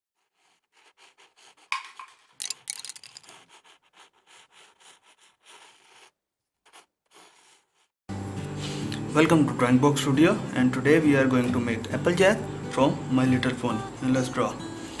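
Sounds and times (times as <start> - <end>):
pencil scribbling on paper: 0.2 - 7.9.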